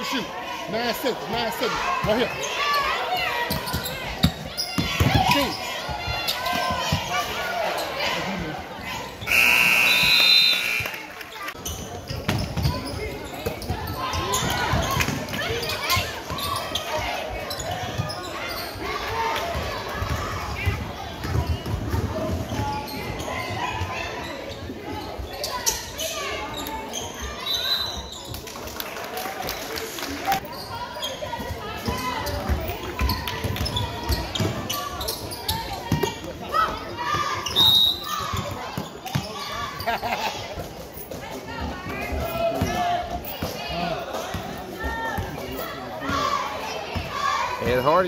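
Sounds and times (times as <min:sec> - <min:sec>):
spectators' voices: 0:00.0 - 0:48.0
referee's whistle: 0:09.3 - 0:11.0, 0:27.4 - 0:28.2, 0:37.5 - 0:38.2.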